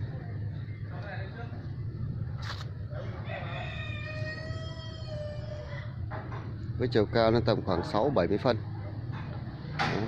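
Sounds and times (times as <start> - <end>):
rooster crowing: 3.0 - 6.0.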